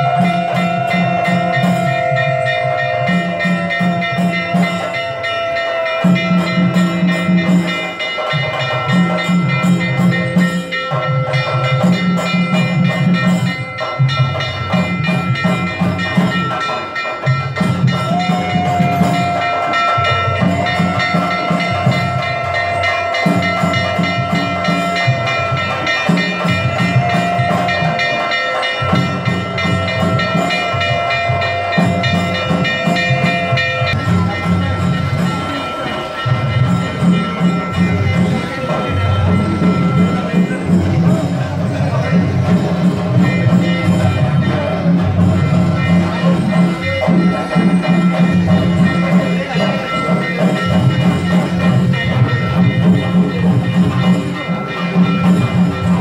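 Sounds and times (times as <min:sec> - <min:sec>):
rhythmic drumming: 0:00.0 - 0:56.0.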